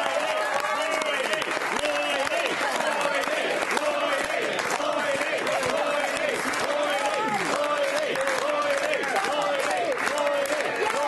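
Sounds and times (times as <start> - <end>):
audience applauding: 0.0 - 11.0
people laughing: 1.8 - 10.5.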